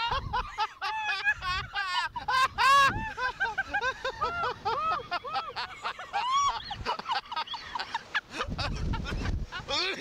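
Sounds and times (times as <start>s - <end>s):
riders shrieking and laughing: 0.0s - 10.0s.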